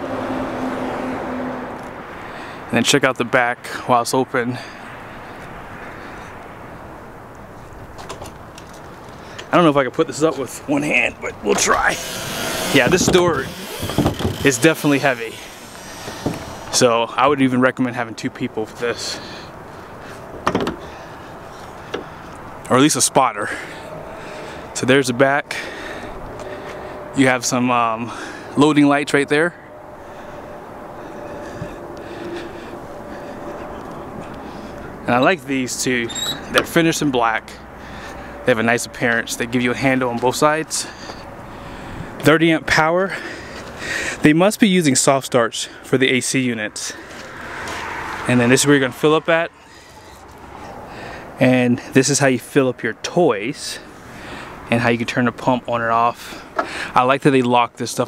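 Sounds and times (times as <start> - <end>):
distant road traffic: 0.0 - 58.0.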